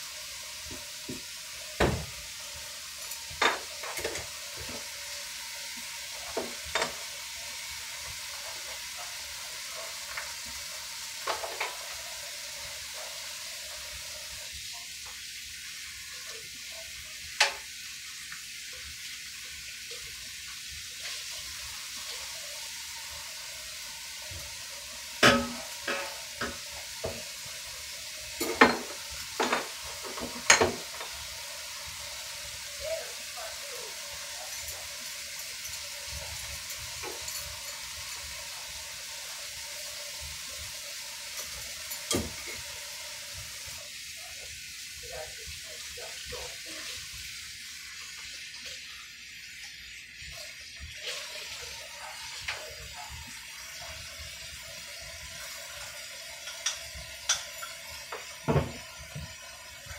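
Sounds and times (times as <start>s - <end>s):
running tap water: 0.0s - 59.9s
dishes clinking: 3.0s - 4.8s, 6.3s - 7.0s, 25.2s - 27.3s, 28.4s - 31.2s, 36.6s - 38.0s, 41.4s - 42.7s, 56.4s - 59.4s.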